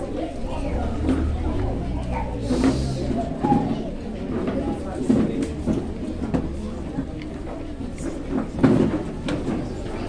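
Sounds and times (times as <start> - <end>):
people talking indistinctly: 0.0 - 8.6
low rumble: 0.3 - 4.8.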